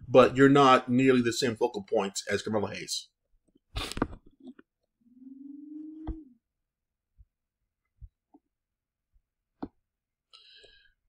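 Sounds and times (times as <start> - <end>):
mouth smack or breath: 3.8 - 4.2.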